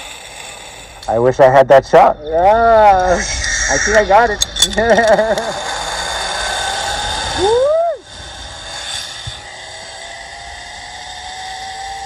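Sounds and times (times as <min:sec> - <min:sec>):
zip-line pulleys whirring: 0:00.0 - 0:01.4, 0:03.0 - 0:12.0
swooping cry: 0:04.9 - 0:12.0.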